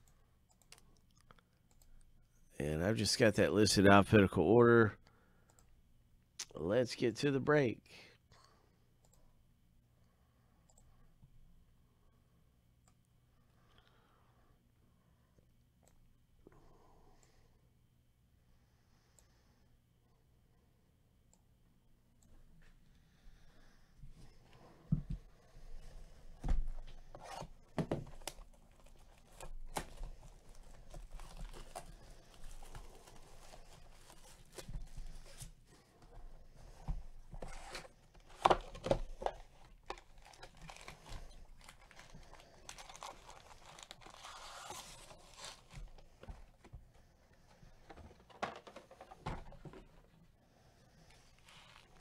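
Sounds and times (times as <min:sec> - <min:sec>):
plastic wrap tearing and crinkling: 0:39.9 - 0:45.8.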